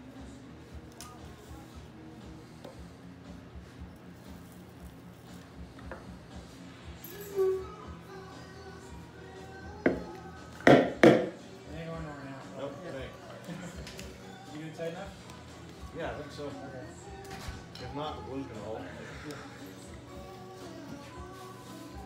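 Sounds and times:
soft music: 0.0s - 22.0s.

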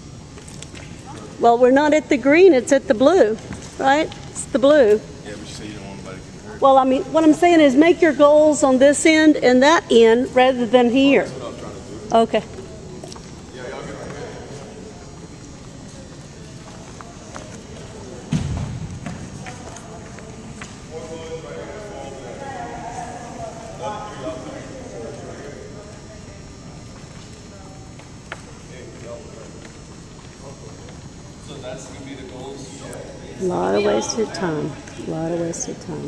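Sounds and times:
indistinct voices echoing: 6.6s - 36.0s.

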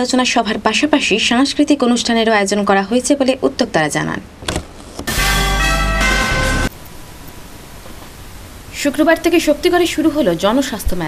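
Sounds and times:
musical news sting chord: 5.1s - 6.7s
low hiss: 6.7s - 11.0s.

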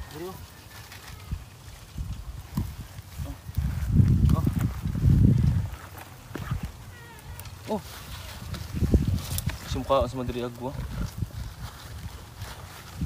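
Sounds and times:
farm animal calling: 6.4s - 8.3s.

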